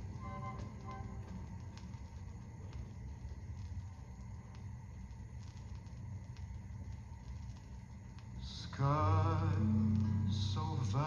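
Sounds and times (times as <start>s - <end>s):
low turntable rumble: 0.0s - 11.0s.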